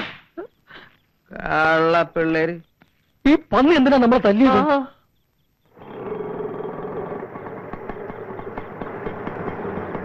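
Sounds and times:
auto-rickshaw engine rattling: 5.8 - 10.0.

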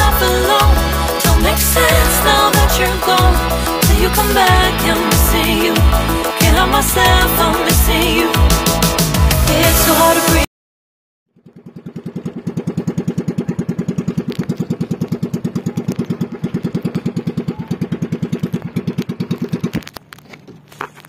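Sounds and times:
boat engine putt-putt: 11.3 - 21.0.

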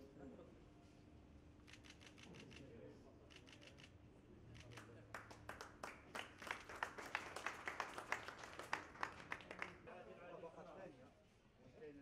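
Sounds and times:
people clapping: 4.7 - 9.9.

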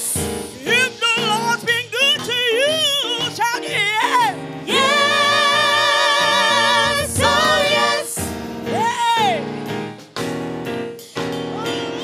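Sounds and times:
sustained backing chords: 0.0 - 11.6.

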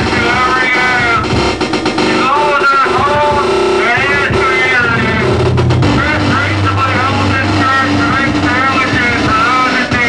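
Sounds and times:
loud low electronic drone: 0.0 - 10.0
gliding higher electronic tones: 1.6 - 8.6.

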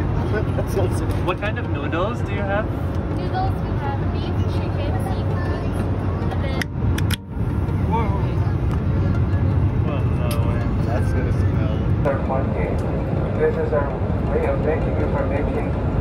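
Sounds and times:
airliner cabin drone: 0.0 - 16.0
faint voices: 7.6 - 15.8.

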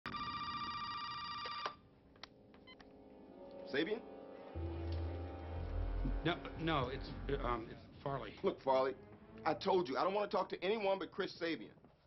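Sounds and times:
desk telephone ringing: 0.1 - 1.9.

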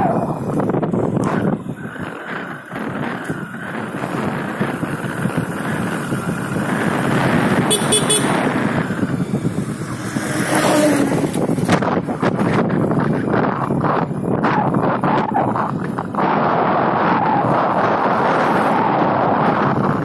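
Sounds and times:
motorcycle engine running: 0.0 - 20.0
wind rush on microphone: 0.0 - 20.0
horn toot: 7.7 - 8.5.

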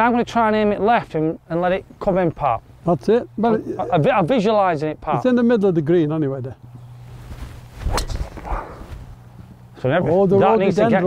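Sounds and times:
golf club striking ball: 7.9 - 8.8.

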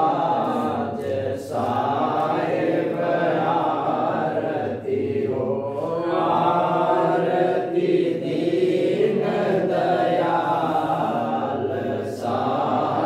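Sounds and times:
men chanting a hymn: 0.0 - 13.0.

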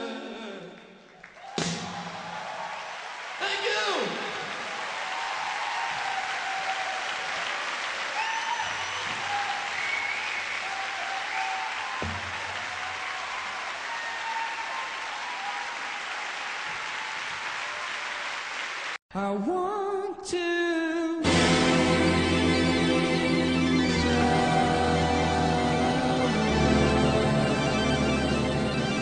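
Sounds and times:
audience applauding: 1.0 - 19.0.

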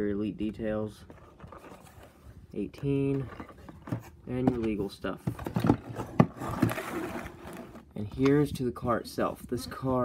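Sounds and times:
cardboard rustling and scraping: 0.4 - 9.9.

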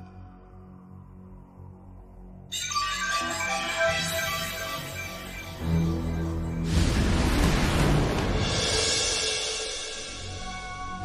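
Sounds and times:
eerie shimmering high chord: 0.0 - 7.3.

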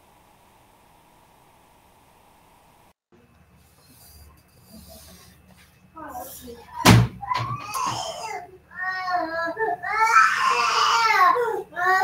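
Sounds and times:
sharp loud thump: 6.8 - 7.3.

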